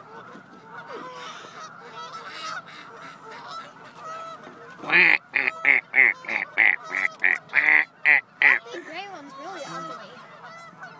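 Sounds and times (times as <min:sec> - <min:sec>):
geese honking: 0:00.0 - 0:10.9.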